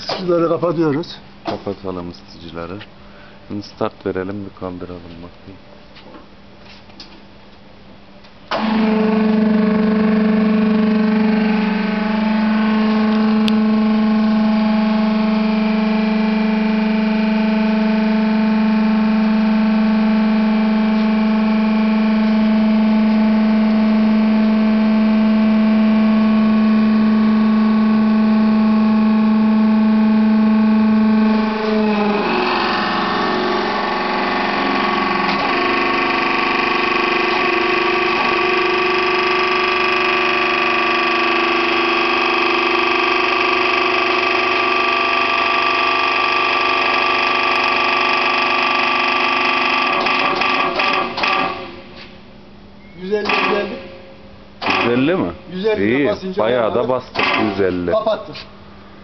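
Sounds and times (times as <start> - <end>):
hydraulic pump motor whining: 8.5 - 52.1, 53.1 - 54.0, 54.6 - 55.9, 57.2 - 57.8.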